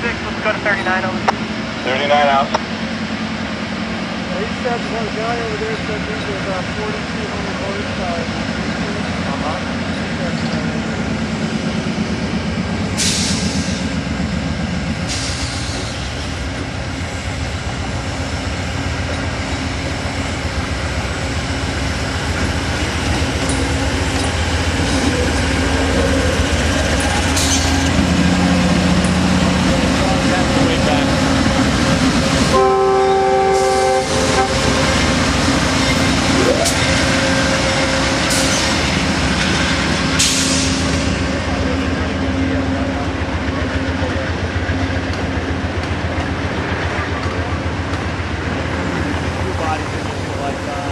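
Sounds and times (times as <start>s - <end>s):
diesel locomotive passing: 0.0s - 50.9s
rail cars rolling past: 0.0s - 50.9s
multi-tone train horn: 32.5s - 34.9s.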